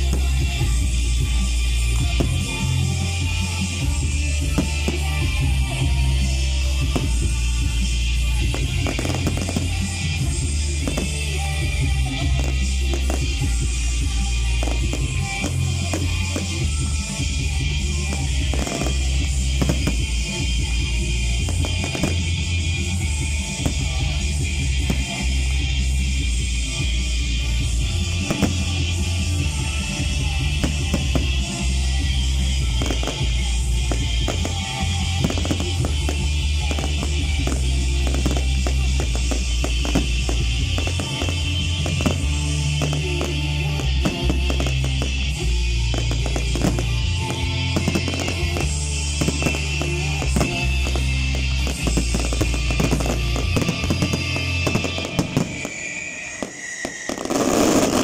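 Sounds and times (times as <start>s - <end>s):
fireworks bangs and crackles: 0.0s - 58.0s
loud music with heavy bass: 0.0s - 58.0s.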